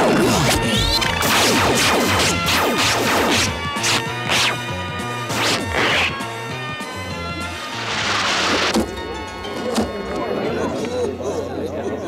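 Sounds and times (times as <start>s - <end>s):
cartoon soundtrack music: 0.0s - 11.4s.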